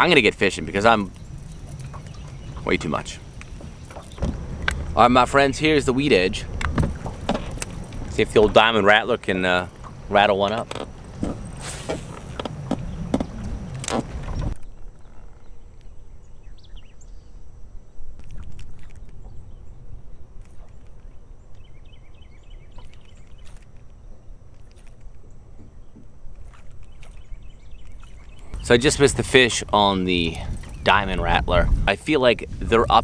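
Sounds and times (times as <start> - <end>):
water lapping against boat: 0.0 - 14.6, 24.5 - 33.0
wind buffeting microphone: 0.0 - 15.0, 27.2 - 33.0.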